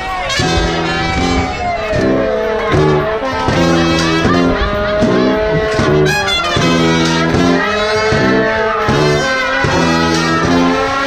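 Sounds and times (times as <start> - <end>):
sousaphone bass line: 0.0 - 11.0
trumpets and saxophone: 0.0 - 11.0.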